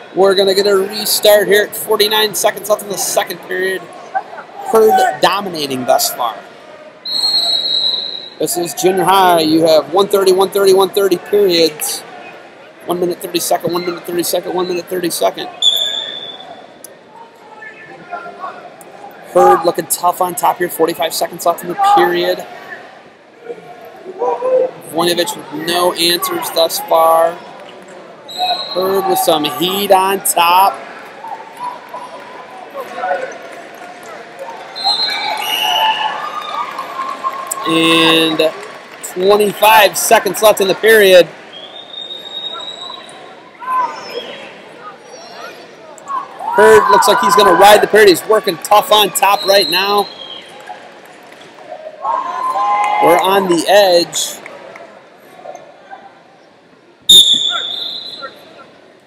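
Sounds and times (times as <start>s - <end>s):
chatter of many voices: 0.0s - 59.0s
faint arena hubbub: 0.0s - 59.0s
referee's whistle: 7.0s - 8.4s, 15.6s - 16.8s, 28.3s - 29.6s, 34.8s - 36.2s, 41.5s - 43.3s, 49.2s - 50.5s, 57.1s - 58.6s.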